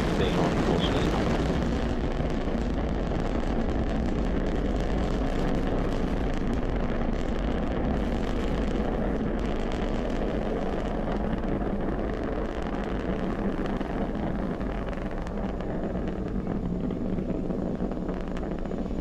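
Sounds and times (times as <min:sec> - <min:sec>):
rocket engines roaring: 0:00.0 - 0:19.0.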